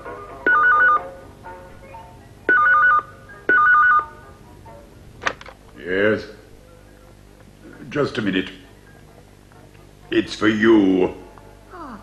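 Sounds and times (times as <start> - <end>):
telephone ringing with warbling trill: 0.5 - 1.1, 2.5 - 4.2.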